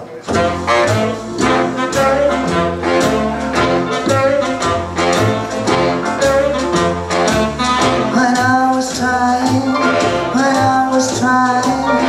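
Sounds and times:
swing band playing shuffle: 0.0 - 12.0.

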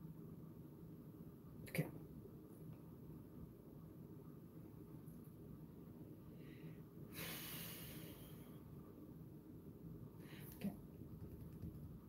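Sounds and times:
man breathing out through nose: 6.4 - 8.5.

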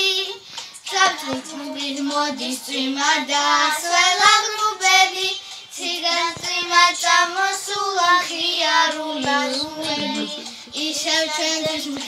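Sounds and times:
girls singing together: 0.0 - 12.0.

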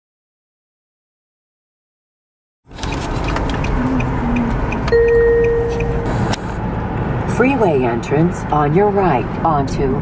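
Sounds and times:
car interior road noise: 2.7 - 10.0
steady tone: 3.8 - 6.4.

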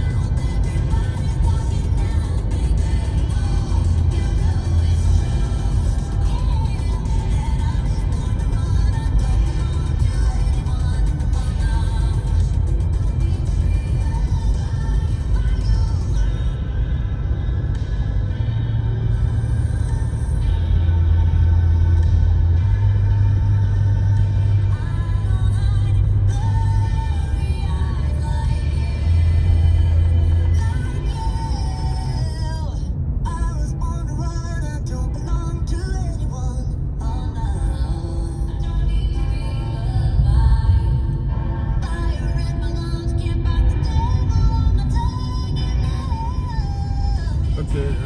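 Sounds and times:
deep sustained bass notes: 0.0 - 48.0
low rumble: 0.0 - 48.0.

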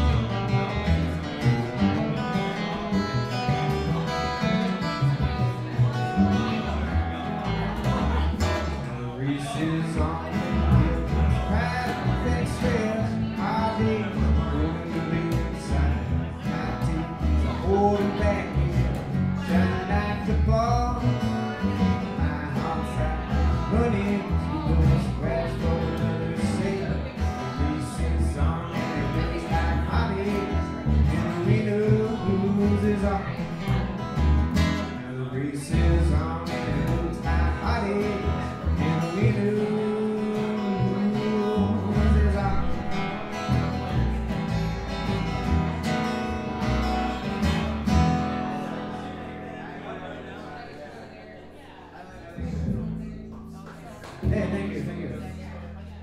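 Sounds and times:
guitar: 0.0 - 56.0
person singing: 35.0 - 43.3.

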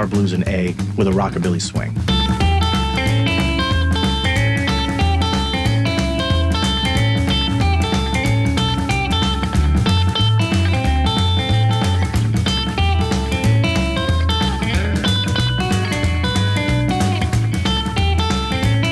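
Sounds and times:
fingerpicked electric guitar blues: 0.0 - 18.9.

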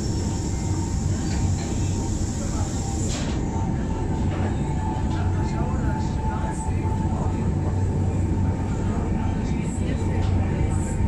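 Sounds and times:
railway car low rumble: 0.0 - 11.0
thin steady whine: 0.0 - 11.0.

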